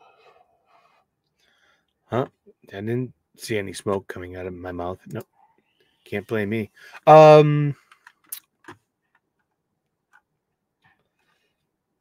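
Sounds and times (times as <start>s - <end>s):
faint soft breaths: 0.0s - 2.1s.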